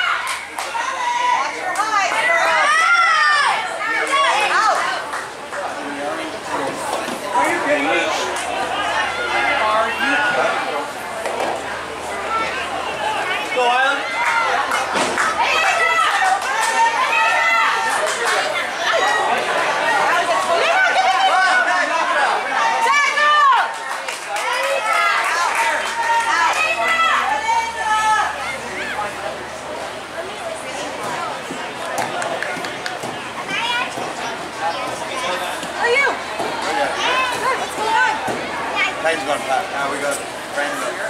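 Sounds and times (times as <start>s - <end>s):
young voices shouting and calling: 0.0s - 41.0s.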